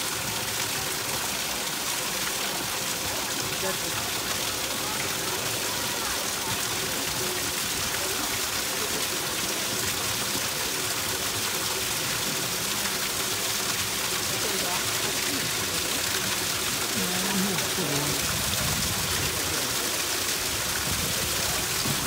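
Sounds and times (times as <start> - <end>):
faint voices: 0.0 - 22.0
water rushing: 0.0 - 22.0.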